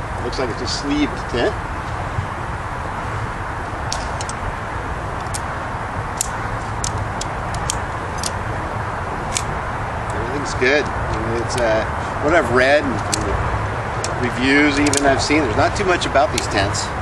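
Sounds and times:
steady background rumble: 0:00.0 - 0:17.0
tent poles clicking together: 0:03.9 - 0:04.4, 0:05.2 - 0:05.5, 0:06.2 - 0:08.4, 0:09.3 - 0:09.5, 0:12.9 - 0:13.3, 0:14.0 - 0:15.2.

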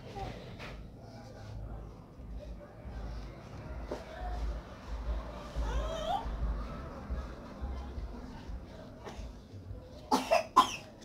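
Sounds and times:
person coughing: 0:10.1 - 0:10.9.

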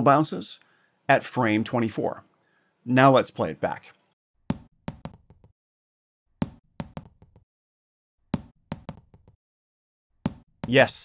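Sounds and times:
rubber ball bouncing on wood floor: 0:04.5 - 0:05.5, 0:06.4 - 0:07.4, 0:08.3 - 0:09.4, 0:10.2 - 0:10.8.

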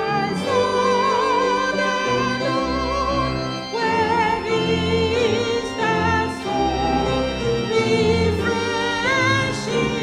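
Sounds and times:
organ sustained chords: 0:00.0 - 0:10.0
woman singing a hymn: 0:00.0 - 0:10.0.

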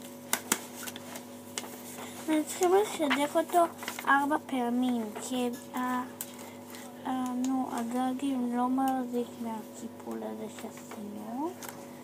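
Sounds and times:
paper crackling: 0:00.0 - 0:12.0
faint paper ticks: 0:01.5 - 0:08.2, 0:10.0 - 0:11.8.

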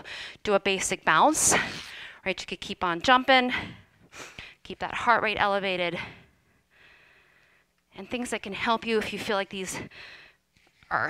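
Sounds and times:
woman speaking: 0:00.5 - 0:01.6, 0:02.2 - 0:03.6, 0:04.7 - 0:06.1, 0:08.0 - 0:09.9.

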